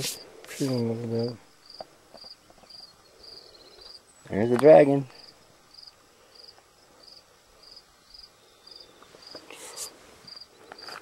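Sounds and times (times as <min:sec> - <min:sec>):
rustling: 0:00.0 - 0:02.9, 0:09.0 - 0:11.0
insect chirping in high pulses: 0:00.0 - 0:04.4, 0:05.2 - 0:10.9.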